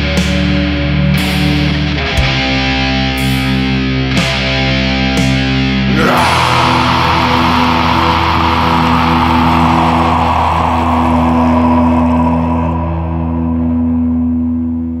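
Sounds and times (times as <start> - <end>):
distorted guitar chord ringing: 0.0 - 15.0
noisy wash: 6.0 - 14.5.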